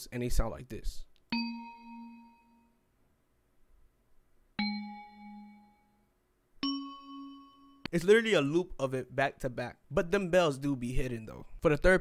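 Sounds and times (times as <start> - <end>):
synthesized bell notes: 1.3 - 2.8, 4.6 - 8.0.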